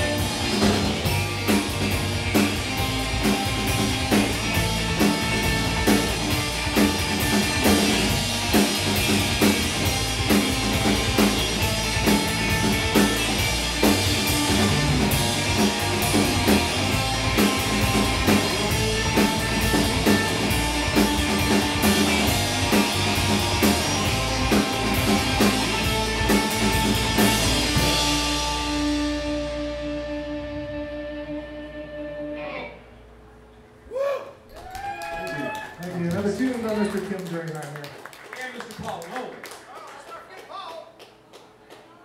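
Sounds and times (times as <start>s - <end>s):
live rock band playing: 0.0s - 32.9s
guitar notes ringing: 10.0s - 33.1s.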